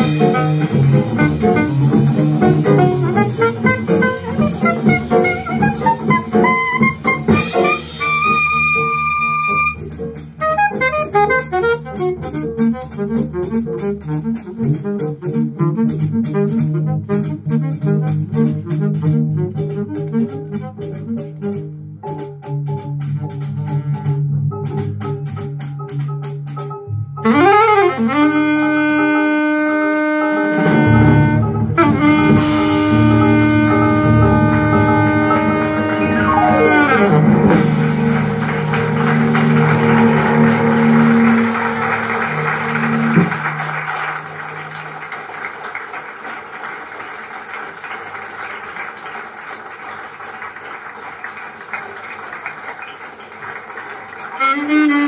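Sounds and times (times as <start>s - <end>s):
jazz held note: 0.0s - 21.7s, 27.2s - 44.8s, 54.4s - 55.0s
alto saxophone bending note: 27.2s - 38.2s, 54.4s - 55.0s.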